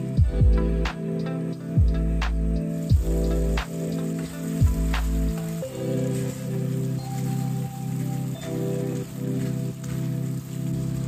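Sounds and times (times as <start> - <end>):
background music: 0.0 - 11.0
curry sizzling and bubbling: 0.0 - 11.0.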